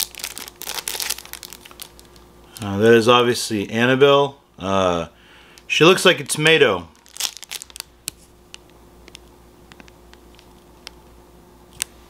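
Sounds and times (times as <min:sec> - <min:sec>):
plastic bag crinkling: 0:00.0 - 0:02.7, 0:06.9 - 0:08.3.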